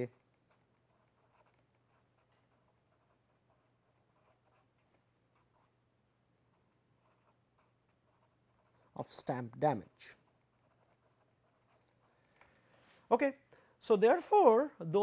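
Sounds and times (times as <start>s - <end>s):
pen scratching on paper: 0.0s - 5.8s, 6.5s - 12.2s.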